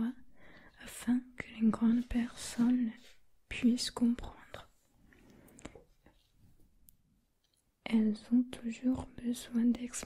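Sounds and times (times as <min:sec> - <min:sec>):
person whispering: 0:00.0 - 0:04.8, 0:07.9 - 0:10.0.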